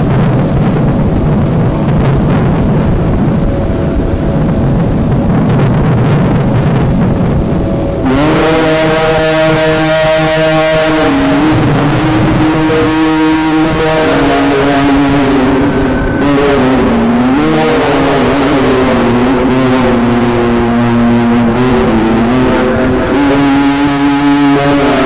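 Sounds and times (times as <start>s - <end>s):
background noise: 0.0s - 25.0s
man chanting held note: 8.0s - 25.0s.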